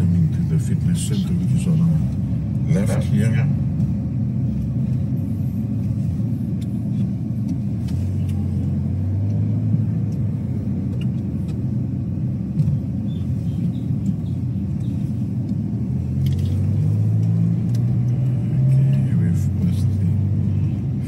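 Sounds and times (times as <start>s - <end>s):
car engine rumble: 0.0s - 21.0s
road noise: 0.0s - 21.0s.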